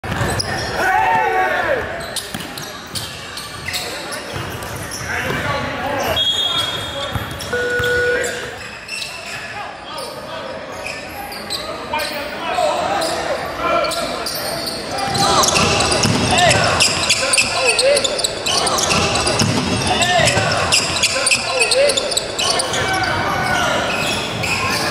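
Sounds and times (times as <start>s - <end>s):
indistinct voices: 14.0s - 24.9s
basketballs bouncing on hardwood: 15.1s - 17.2s, 18.8s - 21.1s.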